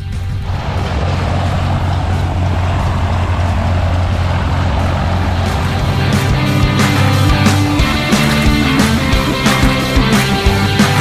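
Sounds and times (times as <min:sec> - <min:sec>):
propeller plane engine running: 0:00.0 - 0:11.0
rock music with drums and guitar: 0:04.5 - 0:11.0.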